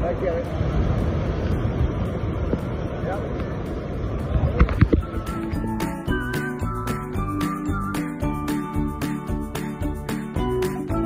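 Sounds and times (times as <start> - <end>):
wind rumbling on microphone: 0.0 - 5.8
ocean surf washing: 0.0 - 11.0.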